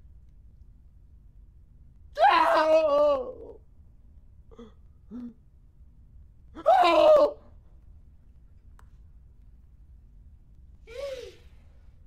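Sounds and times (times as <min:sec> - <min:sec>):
man's frightened quavering cry: 0:06.6 - 0:07.4.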